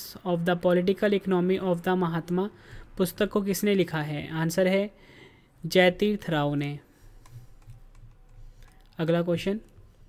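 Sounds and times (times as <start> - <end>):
soft computer taps: 7.2 - 8.9.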